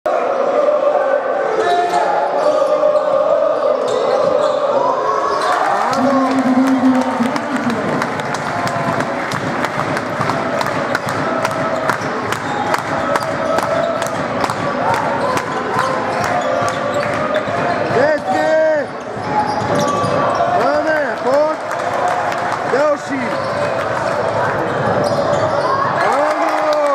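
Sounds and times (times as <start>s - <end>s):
crowd noise: 0.0s - 26.9s
hubbub of spectators' voices: 0.1s - 26.9s.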